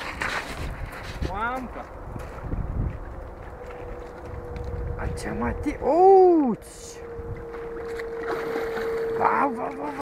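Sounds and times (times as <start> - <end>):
water sloshing and splashing: 1.9 - 5.2, 7.0 - 10.0.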